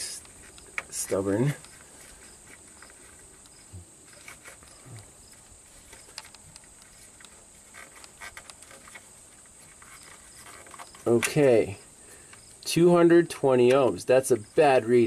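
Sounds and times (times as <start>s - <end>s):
faint high-pitched hiss: 0.0s - 15.0s
connector clicks and rattles: 5.9s - 9.0s.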